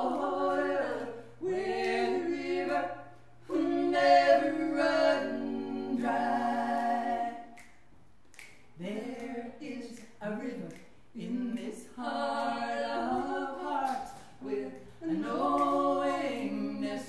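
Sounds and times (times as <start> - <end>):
women singing in harmony: 0.0 - 7.6, 8.8 - 17.0.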